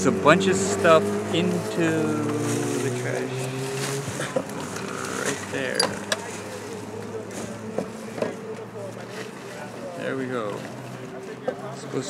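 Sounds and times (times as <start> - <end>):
indistinct voices: 0.0 - 12.0
vehicle engine idling: 0.0 - 12.0.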